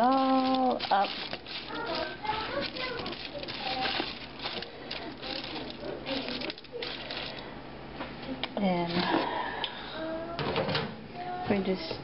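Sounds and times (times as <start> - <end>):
aluminium foil crinkling: 0.0 - 7.5, 8.6 - 9.3.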